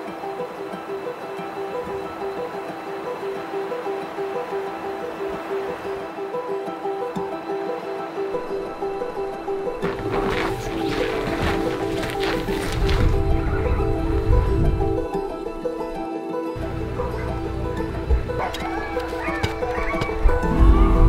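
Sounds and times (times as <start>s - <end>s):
background music: 0.0s - 21.0s
sled dogs yelping and howling: 16.6s - 21.0s.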